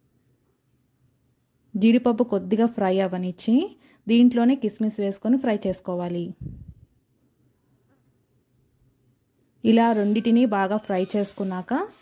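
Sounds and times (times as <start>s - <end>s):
woman speaking: 1.8s - 6.7s, 9.6s - 12.0s.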